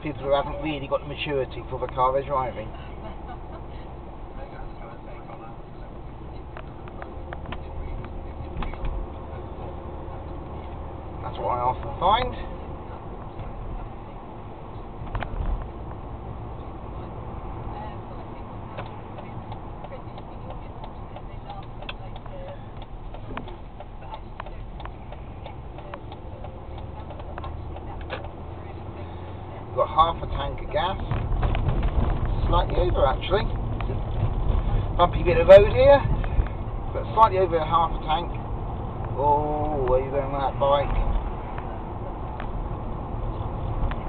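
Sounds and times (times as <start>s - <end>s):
engine and tyre rumble: 0.0s - 44.0s.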